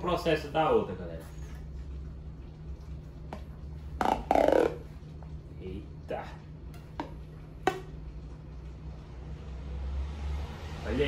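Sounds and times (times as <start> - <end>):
steady low hum: 0.0 - 9.7.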